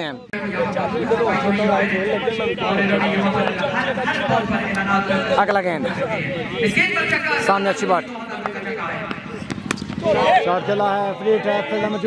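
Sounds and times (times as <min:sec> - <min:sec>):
faint crowd voices: 0:00.0 - 0:12.0
bat striking tennis ball: 0:08.4 - 0:10.3.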